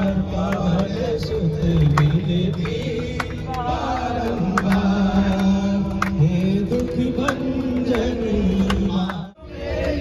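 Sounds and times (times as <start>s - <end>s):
man singing devotional song: 0.0s - 9.5s.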